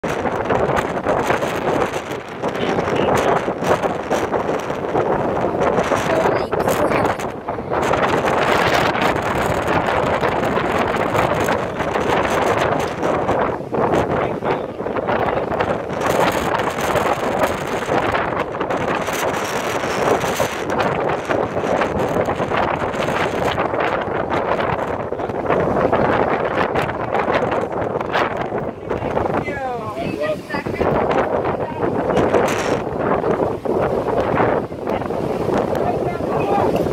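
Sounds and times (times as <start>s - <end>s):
surf breaking against rocks: 0.0s - 36.9s
wind buffeting microphone: 0.0s - 36.9s.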